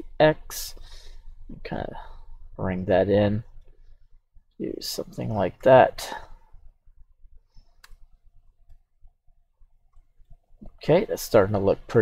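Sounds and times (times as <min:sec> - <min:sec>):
mouse click: 0:07.8 - 0:08.1.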